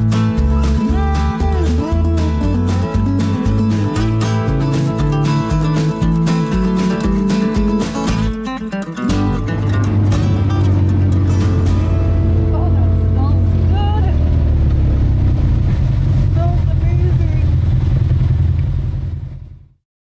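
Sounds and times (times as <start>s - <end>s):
vehicle engine droning: 9.2s - 19.8s.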